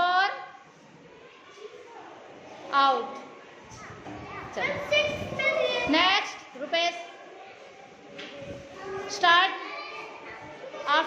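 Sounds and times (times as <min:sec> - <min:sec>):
children calling out: 0:08.8 - 0:11.0.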